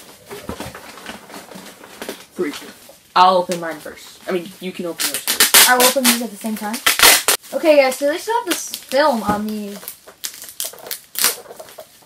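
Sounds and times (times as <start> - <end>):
plastic packaging crinkling: 5.0 - 12.0.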